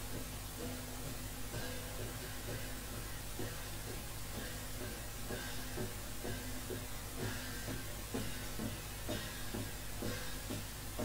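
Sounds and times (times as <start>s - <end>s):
drum beating steadily: 0.0s - 11.0s.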